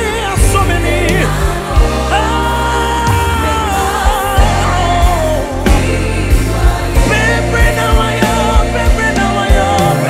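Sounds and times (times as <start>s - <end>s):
band playing: 0.0s - 10.0s
drum and cymbal hits: 0.0s - 10.0s
people singing gospel song: 0.0s - 10.0s
steady bass notes: 0.0s - 10.0s.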